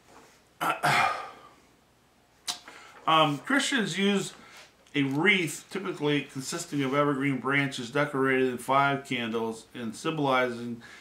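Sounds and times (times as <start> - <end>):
man reading aloud: 3.0 - 11.0
man saying uh: 5.0 - 10.9.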